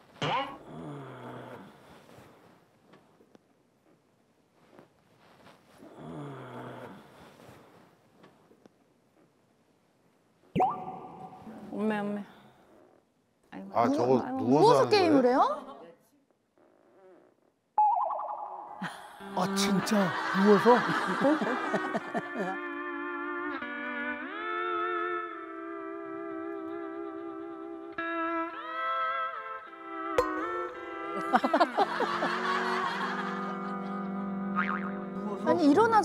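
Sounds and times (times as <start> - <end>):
steady tone sound effect: 10.6 - 11.8.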